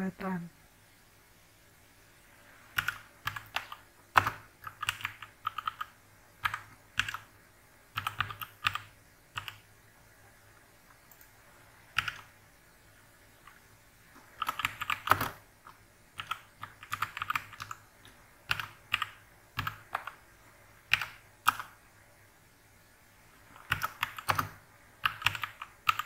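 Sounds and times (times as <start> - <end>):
computer keyboard typing: 2.7 - 7.3, 7.9 - 9.7, 11.0 - 12.3, 14.2 - 20.2, 20.8 - 21.8, 23.5 - 26.0.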